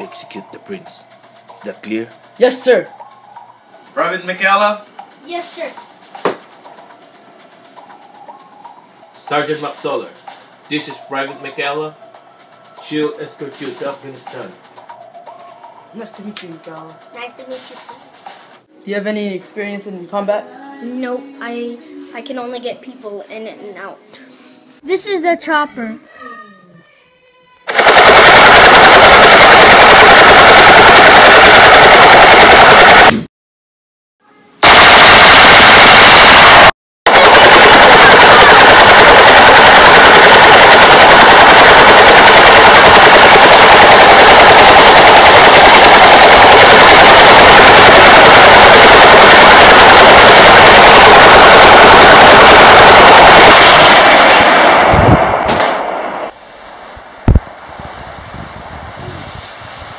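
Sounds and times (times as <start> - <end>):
loud distorted machine-gun fire: 27.7 - 33.3, 34.6 - 56.4.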